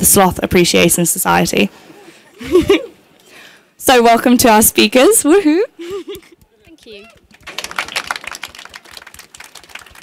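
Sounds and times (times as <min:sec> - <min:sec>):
audience applause: 0:06.8 - 0:10.0.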